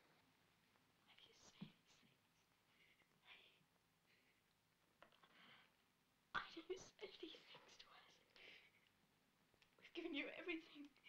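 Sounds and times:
faint whispering: 1.0s - 4.4s, 6.4s - 8.8s, 9.8s - 11.0s.

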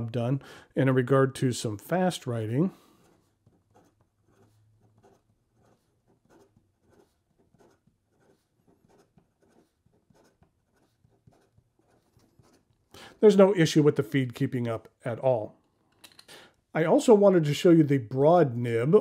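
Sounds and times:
pen nib scratching on paper: 2.8s - 12.9s.

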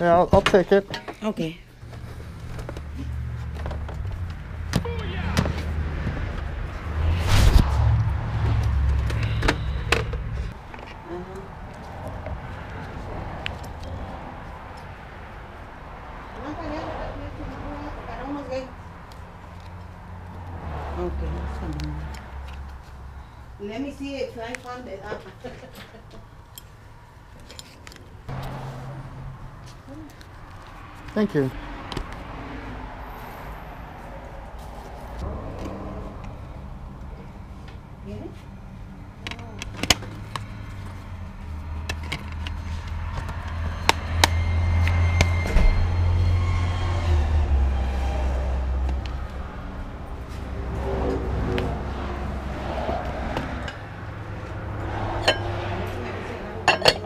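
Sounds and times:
low rumble: 5.6s - 10.6s.

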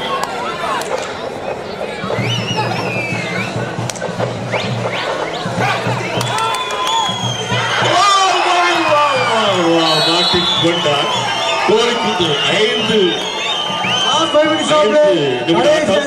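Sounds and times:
high whistles: 2.0s - 16.0s.

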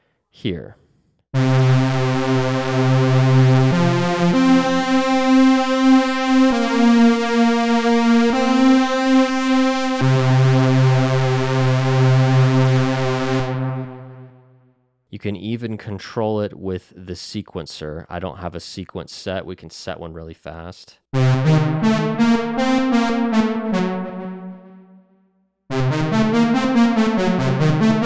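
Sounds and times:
buzzy analog synthesizer note: 1.4s - 14.8s, 21.2s - 25.1s, 25.7s - 28.0s.

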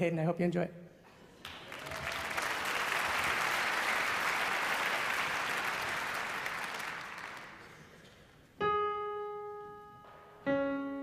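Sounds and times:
audience applauding: 1.4s - 8.0s.

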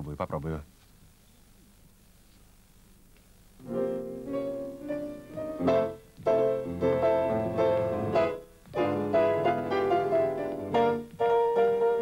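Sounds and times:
slow piano melody: 3.6s - 12.0s.

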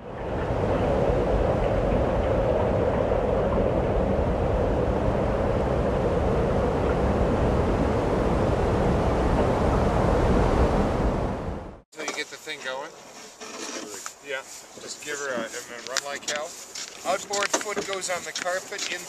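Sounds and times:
wind rushing over microphone: 0.0s - 11.8s.

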